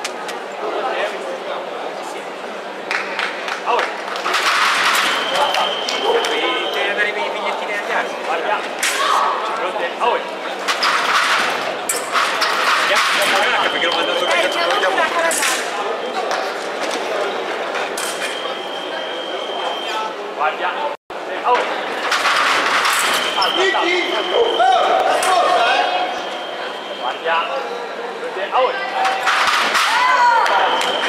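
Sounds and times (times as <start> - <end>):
scoring machine high beep: 5.0 - 7.2, 13.3 - 15.3, 18.2 - 20.1
people shouting: 28.7 - 31.0.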